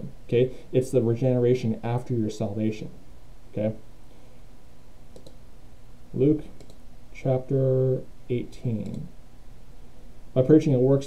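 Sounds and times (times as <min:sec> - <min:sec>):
low room noise: 0:00.0 - 0:11.0
faint computer mouse clicks: 0:05.1 - 0:05.4, 0:06.6 - 0:06.8.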